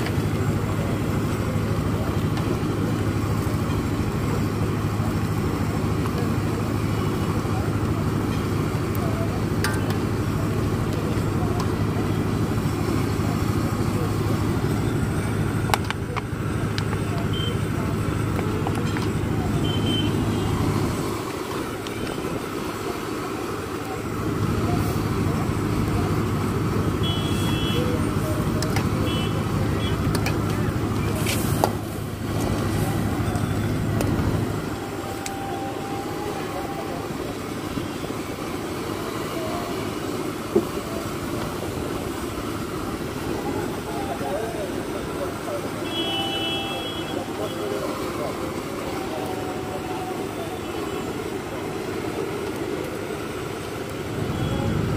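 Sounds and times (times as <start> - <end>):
road traffic: 0.0 - 54.9
horn toots: 26.9 - 28.0, 45.7 - 48.0.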